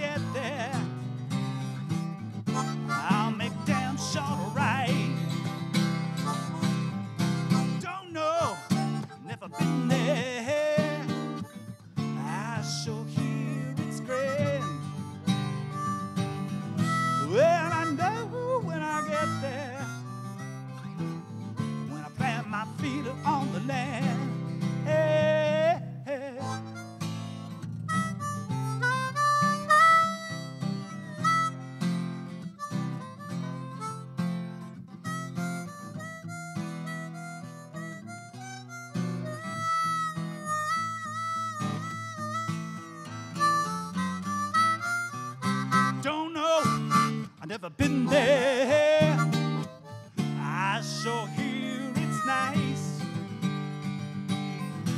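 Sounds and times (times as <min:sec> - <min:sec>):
harmonica solo: 0:00.0 - 0:54.9
strummed acoustic guitar: 0:00.0 - 0:54.9.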